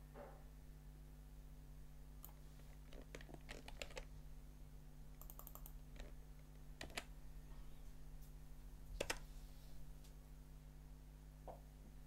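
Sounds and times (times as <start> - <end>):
steady low hum: 0.0 - 12.0
keyboard and mouse clicks: 2.2 - 4.1, 5.2 - 7.1, 9.0 - 9.2.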